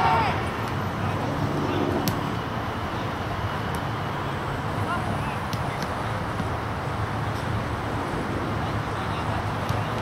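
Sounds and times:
distant players shouting: 0.0s - 1.2s
low rumble of wind or traffic: 0.0s - 10.0s.

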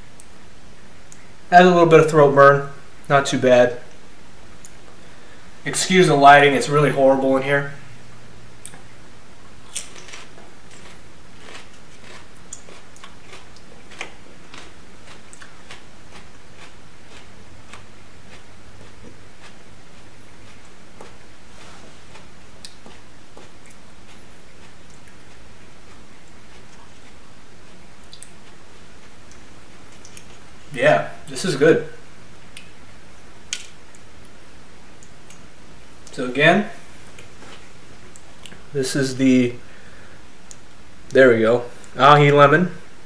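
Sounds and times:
low room hum: 0.0s - 43.0s
pepper being chewed crunchily: 9.6s - 21.2s, 22.0s - 30.5s.

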